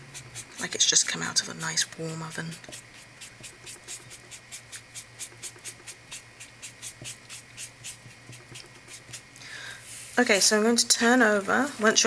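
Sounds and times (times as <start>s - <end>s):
brush scrubbing on cardstock: 0.0s - 12.0s.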